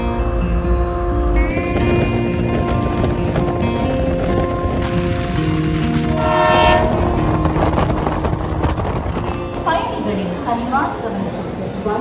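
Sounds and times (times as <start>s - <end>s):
train rumble: 1.1s - 12.0s
train horn: 6.1s - 7.5s.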